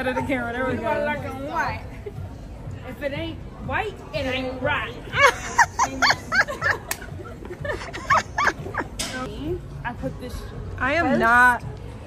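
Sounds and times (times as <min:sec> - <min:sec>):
women laughing and squealing: 0:05.1 - 0:09.1.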